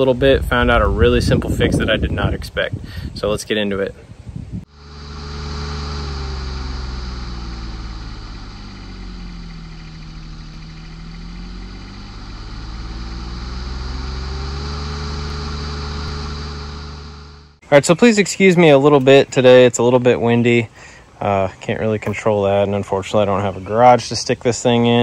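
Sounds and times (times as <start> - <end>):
engine running: 4.6 - 17.6.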